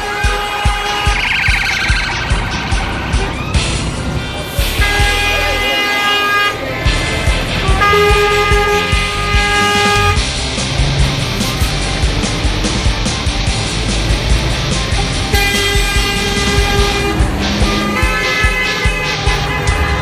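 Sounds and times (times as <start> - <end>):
lorry air horn blasts: 0.0 - 1.3, 4.6 - 6.7, 7.4 - 10.2, 15.3 - 20.0
rock music with steady beat: 0.0 - 20.0.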